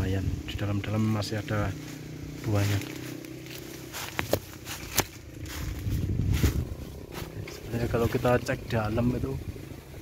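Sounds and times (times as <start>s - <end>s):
low handling rumble: 0.0s - 10.0s
footsteps: 1.7s - 8.5s
leaves brushing against phone: 1.7s - 8.5s.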